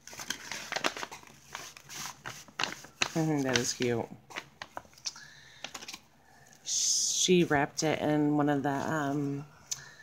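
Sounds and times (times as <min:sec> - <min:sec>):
package unwrapping rustle: 0:00.0 - 0:06.0.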